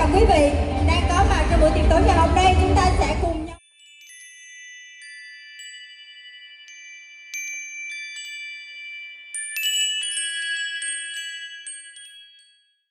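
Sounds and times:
chimes ringing: 3.6 - 12.9.

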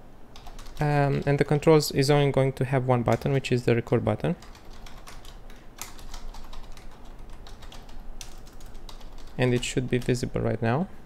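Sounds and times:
typing on a keyboard: 0.4 - 1.3, 4.4 - 10.2.

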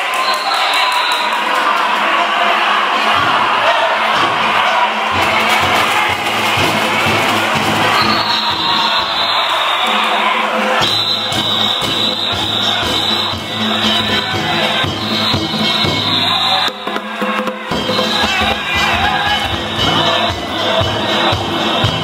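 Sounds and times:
crowd shouting: 0.0 - 22.0
taiko drums: 3.1 - 9.3, 9.9 - 22.0.

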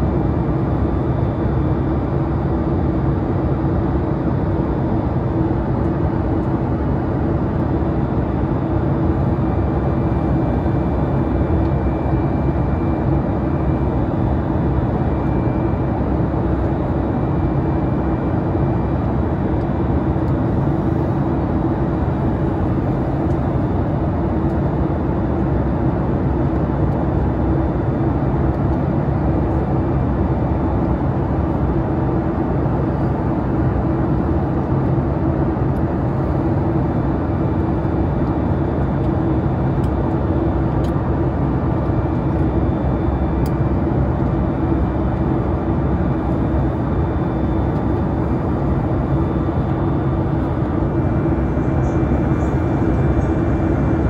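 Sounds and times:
jet engines droning: 0.0 - 54.0
steady low hum: 0.0 - 54.0.

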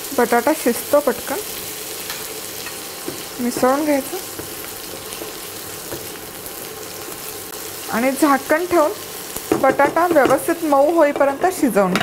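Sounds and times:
food sizzling in hot oil: 0.0 - 12.0.

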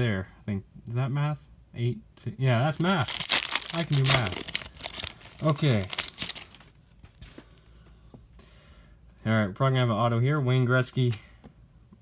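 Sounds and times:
plastic wrapper crinkling: 2.8 - 7.3.

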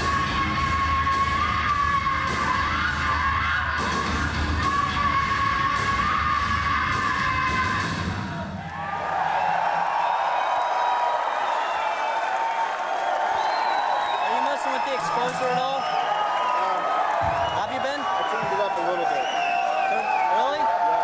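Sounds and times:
crowd cheering and whistling: 0.0 - 21.0.

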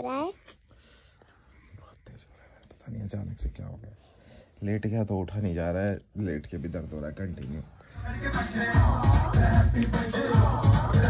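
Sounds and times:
man whispering: 1.6 - 5.0.

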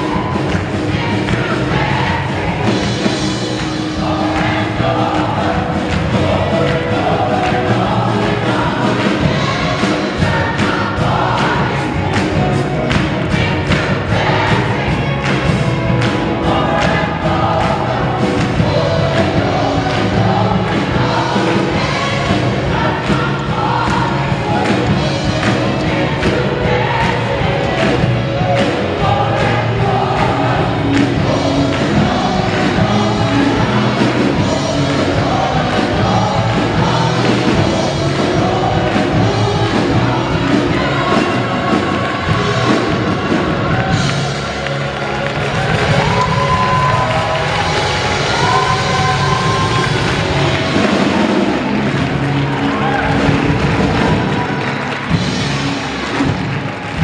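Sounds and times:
audience clapping along: 0.0 - 57.0
gospel choir singing: 0.0 - 57.0
live band drums and keyboard: 0.0 - 57.0.

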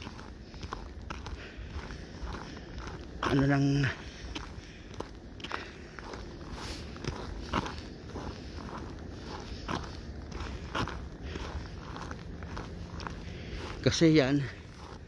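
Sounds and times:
footsteps on packed snow: 0.0 - 15.0.

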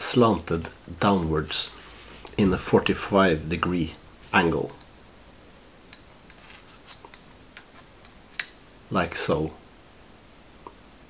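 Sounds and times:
metal tool clicking and scraping: 5.9 - 8.5.

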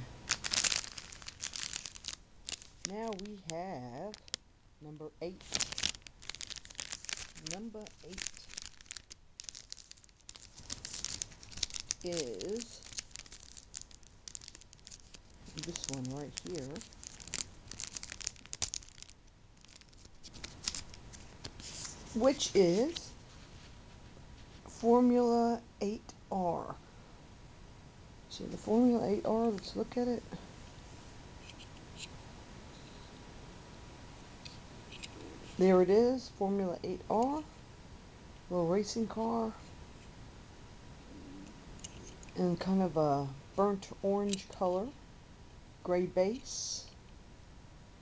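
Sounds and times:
plastic packet crinkling: 0.0 - 4.4, 5.2 - 23.2.

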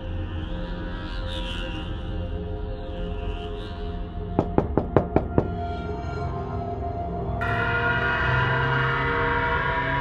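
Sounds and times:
dark background music: 0.0 - 10.0
quick knocks on a door: 4.4 - 5.6.

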